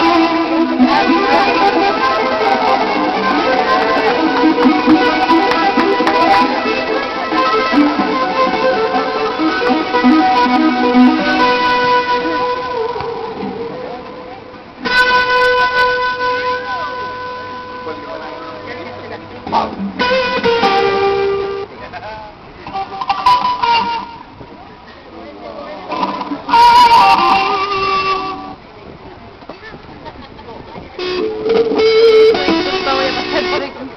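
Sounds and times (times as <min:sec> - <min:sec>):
electric guitar notes: 0:00.0 - 0:30.1, 0:30.8 - 0:33.9.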